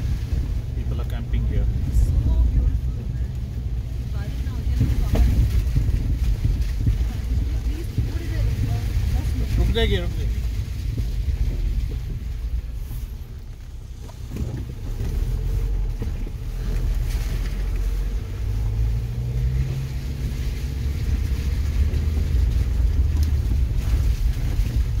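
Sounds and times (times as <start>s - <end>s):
car engine rumble: 0.0s - 25.0s
tyres on rough dirt road: 0.0s - 25.0s.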